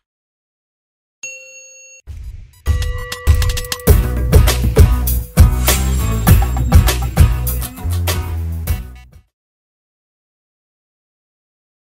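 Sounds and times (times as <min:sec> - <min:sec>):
notification bell ding: 0:01.2 - 0:02.1, 0:02.7 - 0:04.2
bass-heavy music sting: 0:03.9 - 0:09.2.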